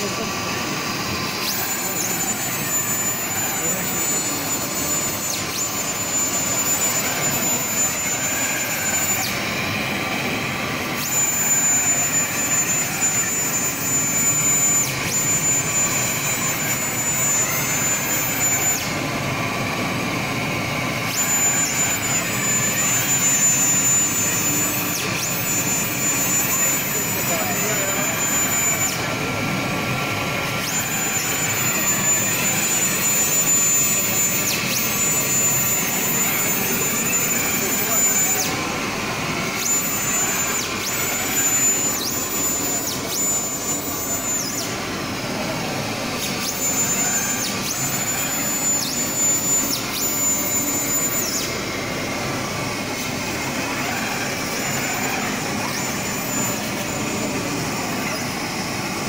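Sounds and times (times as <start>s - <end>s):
high whine: 0.0s - 59.0s.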